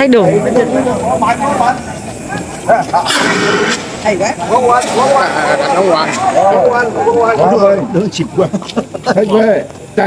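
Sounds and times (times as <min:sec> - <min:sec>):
gas flame hissing: 0:00.0 - 0:10.0
people talking: 0:00.0 - 0:10.0.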